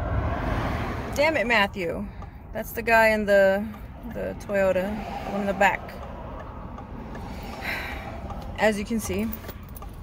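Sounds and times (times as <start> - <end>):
car interior rumble: 0.0 - 10.0.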